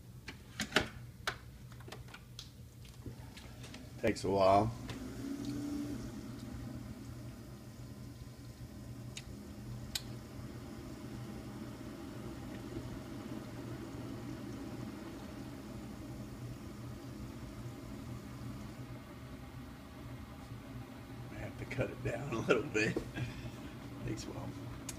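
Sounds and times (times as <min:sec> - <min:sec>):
coffee maker brewing: 0:01.8 - 0:24.9.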